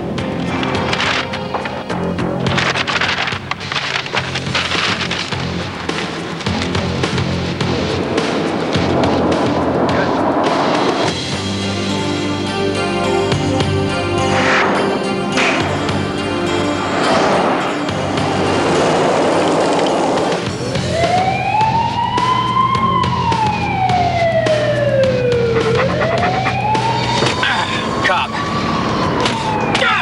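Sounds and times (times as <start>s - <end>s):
police siren wailing: 9.7s - 30.0s.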